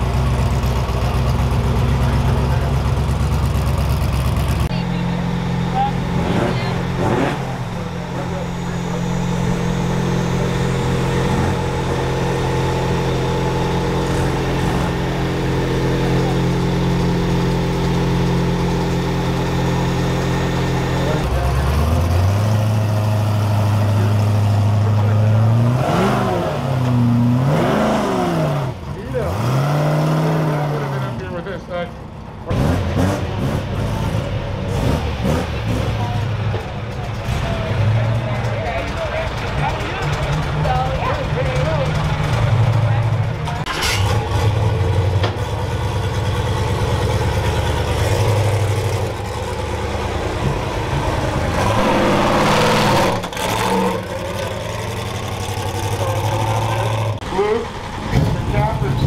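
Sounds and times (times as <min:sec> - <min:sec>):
engines idling and revving: 0:00.0 - 0:59.0.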